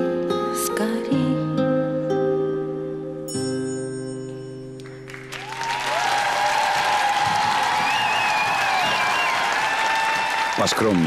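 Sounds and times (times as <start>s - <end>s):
audience applauding and cheering: 4.8s - 11.0s.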